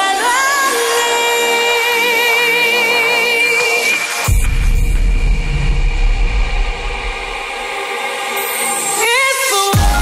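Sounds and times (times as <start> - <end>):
drum and bass music: 0.0 - 10.0.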